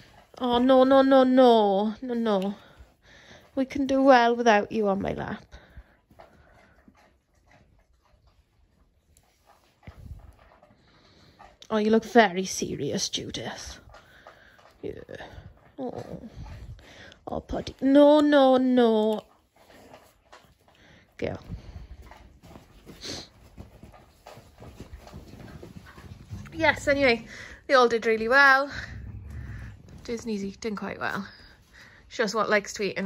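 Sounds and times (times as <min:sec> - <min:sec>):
dogs breathing and panting: 0:00.0 - 0:33.0
small movement sounds: 0:00.0 - 0:33.0.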